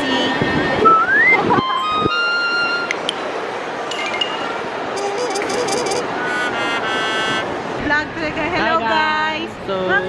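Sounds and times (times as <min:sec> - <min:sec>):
reverberant mall hubbub: 0:00.0 - 0:10.0
clinking chime-like tones: 0:03.9 - 0:05.1.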